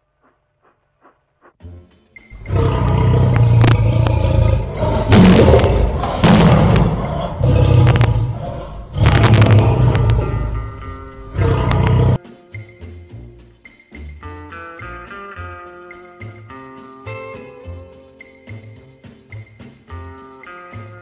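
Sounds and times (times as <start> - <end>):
lion roaring: 2.4 - 12.2
sharp booming hits: 3.4 - 12.2.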